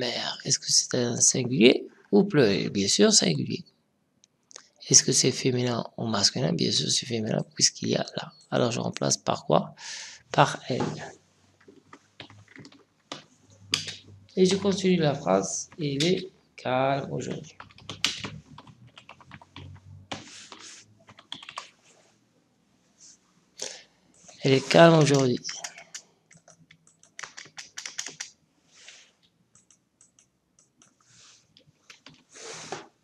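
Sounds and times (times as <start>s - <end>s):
keyboard keys typing: 11.6s - 16.3s, 17.2s - 21.8s, 24.2s - 28.3s, 29.5s - 31.0s, 31.9s - 32.3s.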